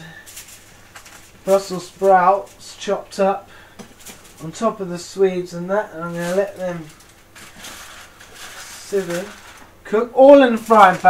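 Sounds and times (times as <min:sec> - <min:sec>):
food sizzling in a frying pan: 0:06.2 - 0:09.7.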